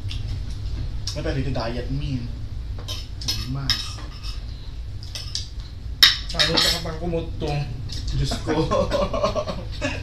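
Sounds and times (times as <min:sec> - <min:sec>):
cutlery scraping on plates: 0:02.8 - 0:04.4.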